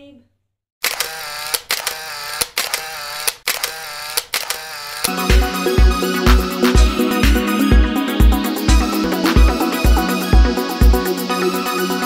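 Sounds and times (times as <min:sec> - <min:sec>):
sharp clicks: 0:00.8 - 0:05.1.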